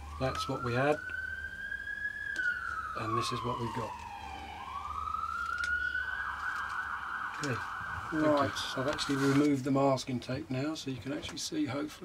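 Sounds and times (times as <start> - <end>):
wailing siren: 0.0 - 9.9.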